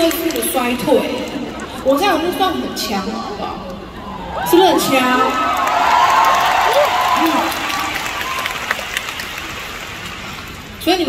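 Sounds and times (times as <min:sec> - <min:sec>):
audience applauding and cheering: 0:04.2 - 0:10.7.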